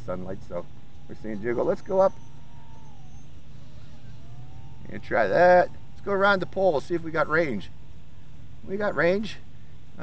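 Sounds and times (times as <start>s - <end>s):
low steady hum: 0.0s - 10.0s
micro quadcopter motors whining: 0.1s - 9.1s.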